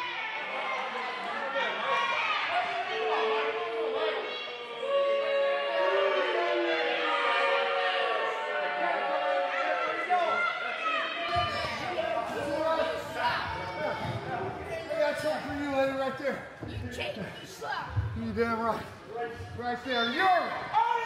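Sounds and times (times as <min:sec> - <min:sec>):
crowd chatter in echoing gym: 0:00.0 - 0:21.0.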